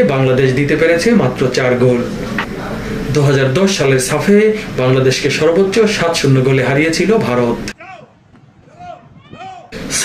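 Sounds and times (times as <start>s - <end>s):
distant shouts of players: 7.7s - 9.8s.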